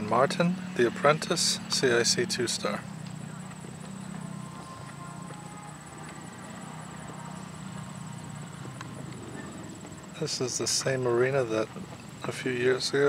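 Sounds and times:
muffled hoofbeats on sand: 1.6s - 13.0s.

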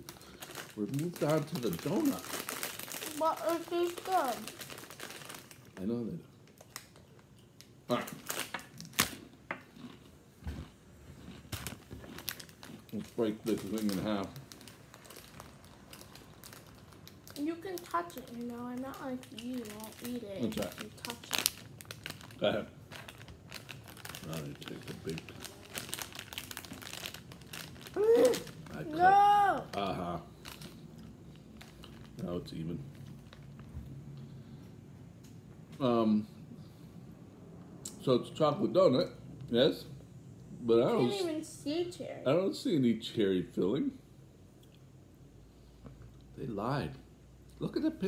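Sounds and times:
foil snack bag crackling: 0.0s - 6.9s, 8.0s - 9.2s, 11.5s - 33.7s
packaging crinkling: 0.0s - 7.3s, 8.0s - 9.2s, 11.4s - 33.7s.

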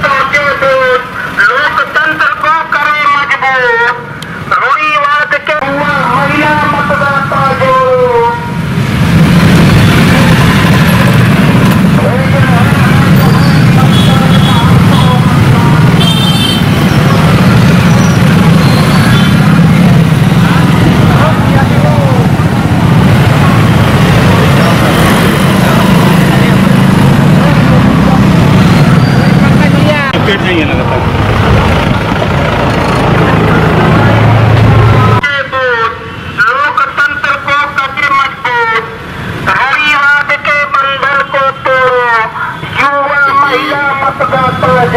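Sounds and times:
man's voice: 0.0s - 8.6s, 30.2s - 31.0s, 35.0s - 44.9s
voices: 0.0s - 8.6s, 11.7s - 31.3s, 32.8s - 44.9s
motorcycles and scooters droning past: 16.6s - 30.1s.

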